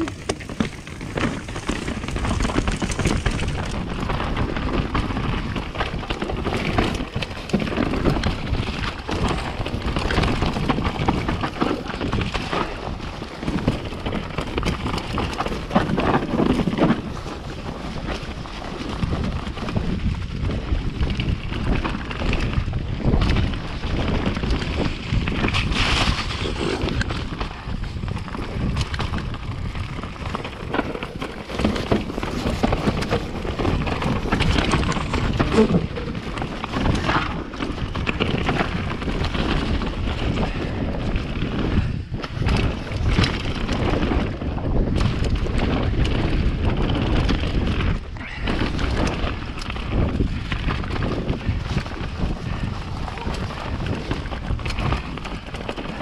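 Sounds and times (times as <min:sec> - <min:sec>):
bike knocks and rattles: 0:00.0 - 0:56.0
tyre rumble: 0:00.0 - 0:56.0
wind rushing on microphone: 0:00.0 - 0:56.0.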